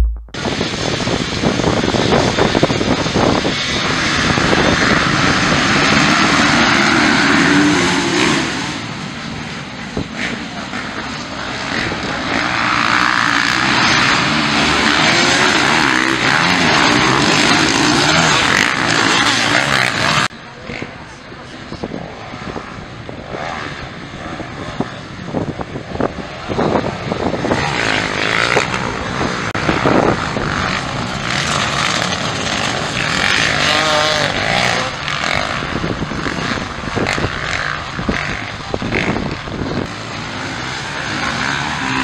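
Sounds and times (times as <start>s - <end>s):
dirt bike engines revving: 0.0s - 42.0s.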